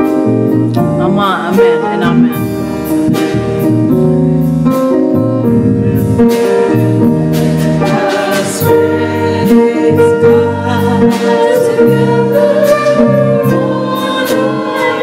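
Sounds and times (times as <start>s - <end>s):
keyboard chords: 0.0s - 15.0s
gospel voices singing: 7.3s - 15.0s.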